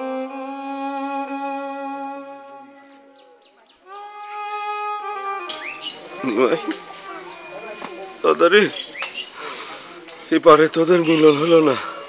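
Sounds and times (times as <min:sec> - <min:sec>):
held violin notes: 0:00.0 - 0:12.0
outdoor background sound: 0:00.0 - 0:12.0
bird chirps: 0:02.7 - 0:04.0, 0:05.4 - 0:06.3, 0:07.3 - 0:09.4.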